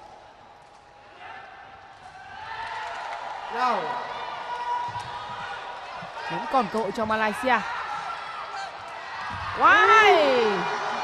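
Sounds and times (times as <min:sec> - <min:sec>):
indoor crowd noise: 0:00.0 - 0:11.0.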